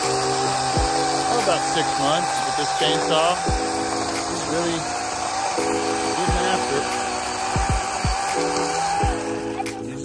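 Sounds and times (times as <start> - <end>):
background music: 0.0 - 10.0
electric chainsaw cutting branch: 0.0 - 10.0.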